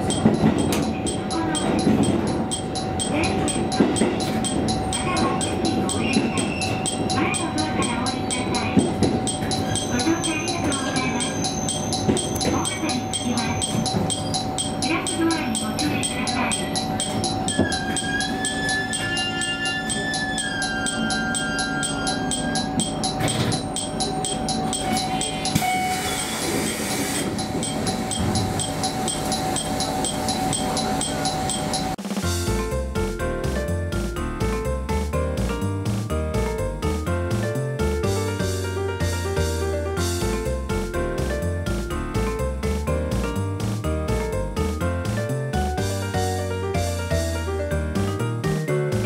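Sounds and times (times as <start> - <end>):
fast high ticking: 0.0 - 25.6, 27.2 - 32.0
bell dinging rapidly: 0.0 - 32.0
railcar engine and wheels running: 0.0 - 49.0.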